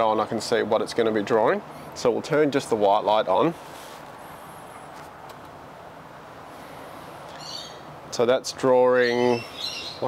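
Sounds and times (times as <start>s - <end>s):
distant traffic: 0.0s - 10.0s.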